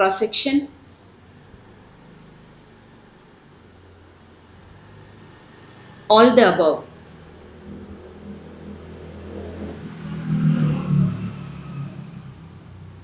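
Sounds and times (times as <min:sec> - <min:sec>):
vehicle engine driving past: 0:00.7 - 0:13.0.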